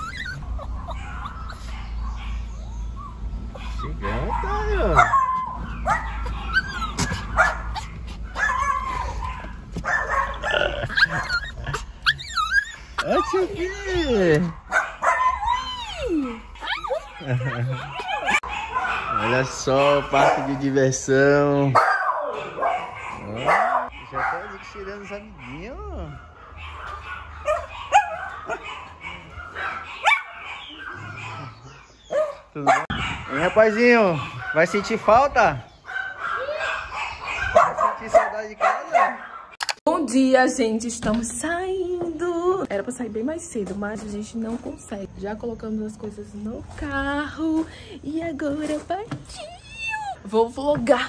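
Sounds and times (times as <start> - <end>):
small dog whining and yipping: 0.0 - 19.3, 49.2 - 50.3
dog barking: 0.2 - 2.6, 3.6 - 15.7, 16.6 - 20.8, 21.7 - 39.6.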